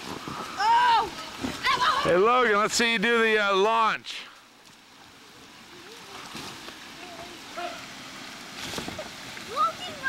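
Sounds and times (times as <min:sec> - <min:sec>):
water spraying: 0:05.2 - 0:10.0.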